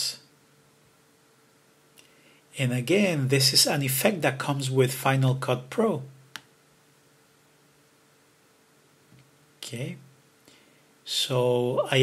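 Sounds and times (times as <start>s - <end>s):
light steady hum: 0.0s - 12.0s.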